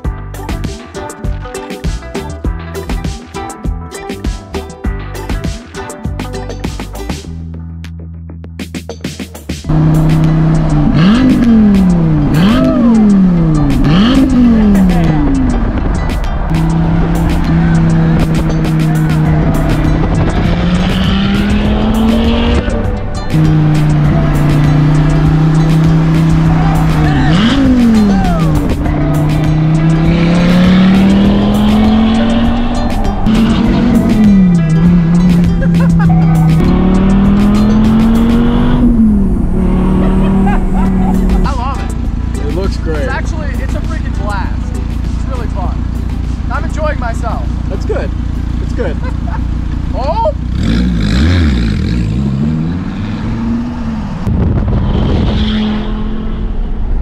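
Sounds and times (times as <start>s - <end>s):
car engine accelerating: 9.7s - 57.0s.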